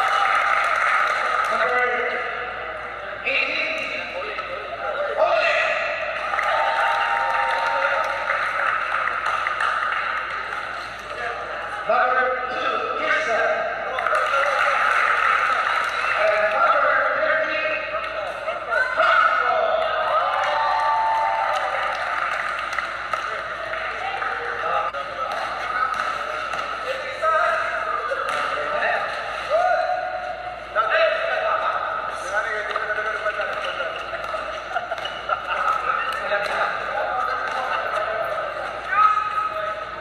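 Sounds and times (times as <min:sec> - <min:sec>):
crowd cheering and shouting: 0:00.0 - 0:01.7, 0:05.2 - 0:09.2, 0:18.7 - 0:22.6
people clapping: 0:00.0 - 0:02.3, 0:05.5 - 0:11.8, 0:13.8 - 0:17.0, 0:19.4 - 0:29.7, 0:32.2 - 0:40.0
bright steady hall noise: 0:00.0 - 0:40.0
man announcing over loudspeaker: 0:01.2 - 0:06.2, 0:11.1 - 0:20.4, 0:23.2 - 0:34.7, 0:35.4 - 0:40.0.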